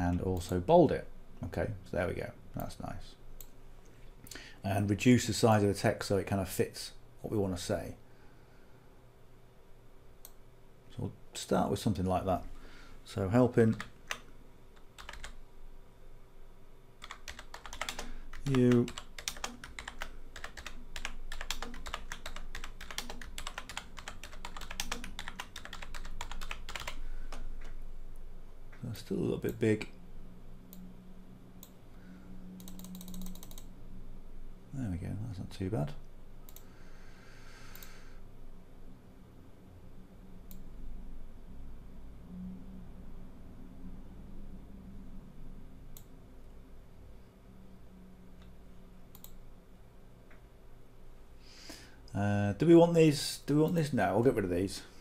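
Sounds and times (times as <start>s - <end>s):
low room hum: 0.0s - 55.0s
computer mouse clicks: 32.6s - 33.7s, 36.5s - 36.7s, 37.7s - 38.0s, 49.1s - 49.4s.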